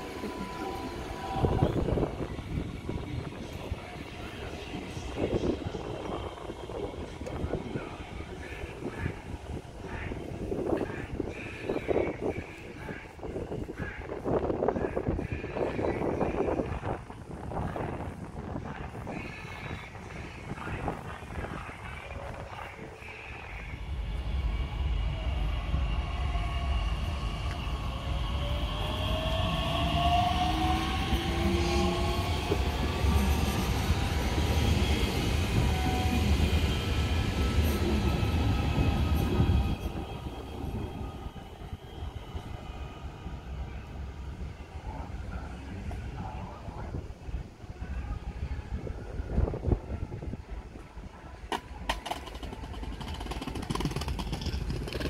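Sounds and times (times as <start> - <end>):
train wheels rumbling on track: 0.0 - 47.3, 50.9 - 55.0.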